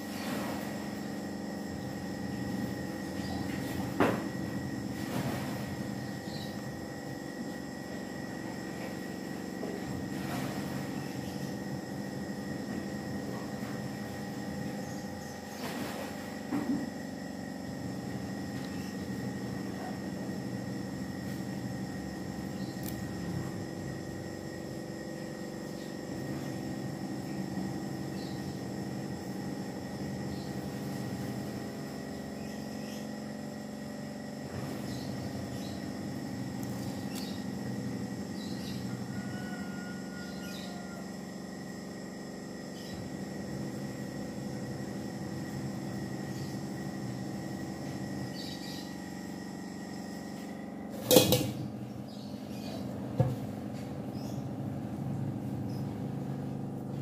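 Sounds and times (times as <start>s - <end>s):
steady hum with held tones: 0.0s - 57.0s.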